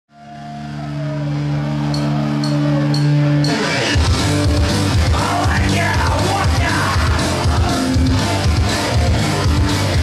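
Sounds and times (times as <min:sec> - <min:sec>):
punk rock band with drums: 0:00.2 - 0:10.0.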